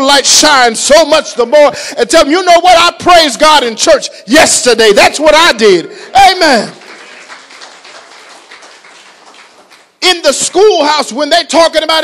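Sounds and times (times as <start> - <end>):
faint scattered clapping: 6.7 - 10.0.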